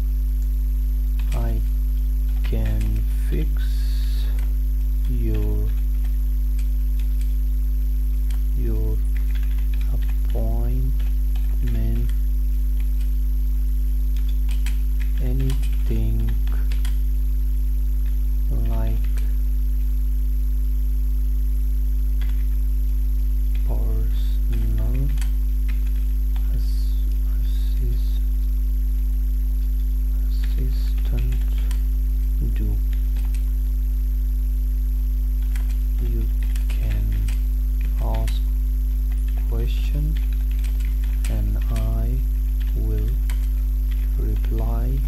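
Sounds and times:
loud electrical mains hum: 0:00.0 - 0:45.0
murmured voice: 0:02.5 - 0:04.4, 0:08.6 - 0:09.1, 0:15.2 - 0:16.7, 0:23.7 - 0:25.2, 0:26.4 - 0:28.3, 0:30.2 - 0:31.7, 0:32.4 - 0:32.8, 0:36.0 - 0:37.3, 0:39.4 - 0:40.2, 0:41.3 - 0:43.2, 0:44.1 - 0:45.0
computer keyboard clicks: 0:09.1 - 0:10.4, 0:14.2 - 0:17.0, 0:18.0 - 0:19.2, 0:22.2 - 0:22.6, 0:24.5 - 0:26.1, 0:31.0 - 0:31.8, 0:32.9 - 0:33.5, 0:35.4 - 0:35.8, 0:36.4 - 0:38.4, 0:40.2 - 0:41.3, 0:42.6 - 0:44.6.

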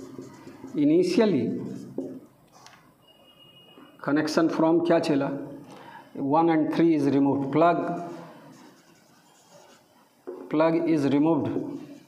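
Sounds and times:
marker scratching on whiteboard: 0:00.0 - 0:02.7, 0:07.8 - 0:10.5, 0:11.6 - 0:12.0.

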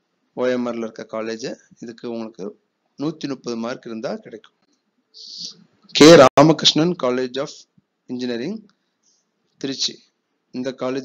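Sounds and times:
man narrating: 0:00.4 - 0:04.4, 0:05.2 - 0:08.6, 0:09.6 - 0:10.0, 0:10.6 - 0:11.0.

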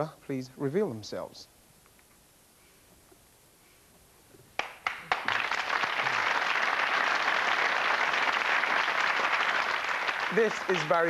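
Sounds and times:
audience applause: 0:04.6 - 0:11.0.

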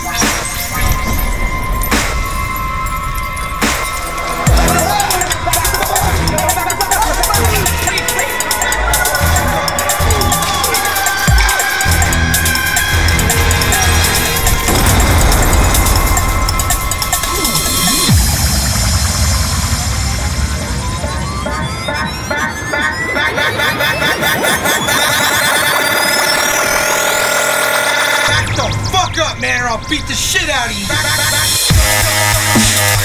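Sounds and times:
dubstep with heavy bass: 0:00.0 - 0:33.0.

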